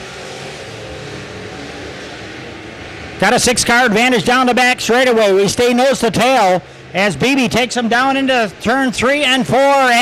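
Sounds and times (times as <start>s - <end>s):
race car engines running: 0.0s - 10.0s.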